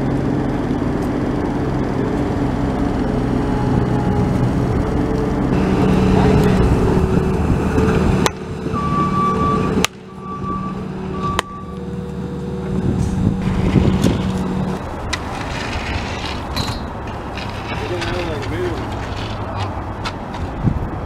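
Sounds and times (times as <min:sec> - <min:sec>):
diesel engine running: 0:00.0 - 0:20.0
backup alarm beeps: 0:08.8 - 0:11.8.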